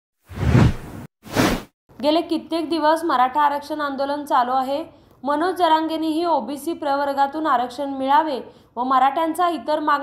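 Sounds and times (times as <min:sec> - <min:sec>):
whoosh sound effects: 0:00.3 - 0:01.7.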